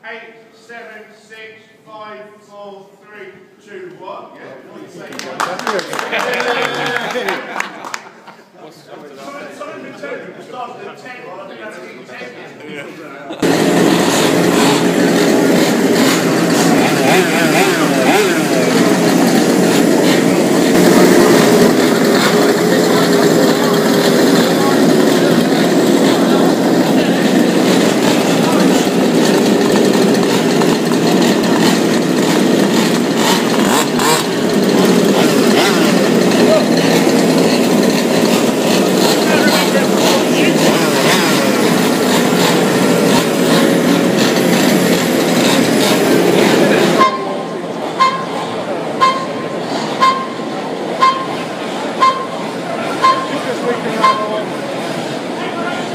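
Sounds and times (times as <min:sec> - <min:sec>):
small engines idling and revving: 0:13.4 - 0:55.9.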